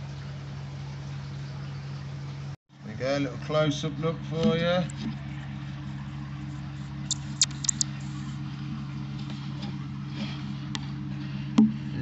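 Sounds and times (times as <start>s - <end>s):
low mechanical hum: 0.0s - 12.0s
short sharp clicks: 7.1s - 7.9s.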